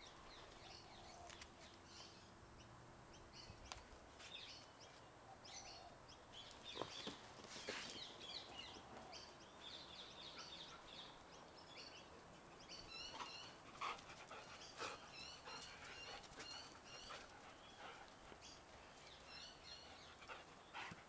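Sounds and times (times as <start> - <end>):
dog panting: 13.1 - 21.0.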